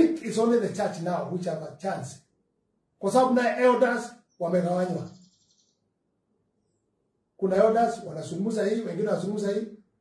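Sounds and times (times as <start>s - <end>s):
man speaking: 0.0s - 2.3s, 3.0s - 5.1s, 7.4s - 9.8s.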